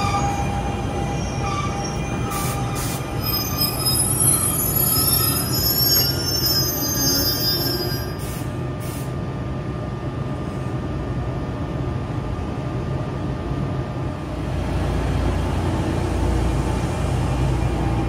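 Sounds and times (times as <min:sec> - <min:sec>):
train brakes squealing: 0:00.0 - 0:09.0
train humming: 0:00.0 - 0:18.0.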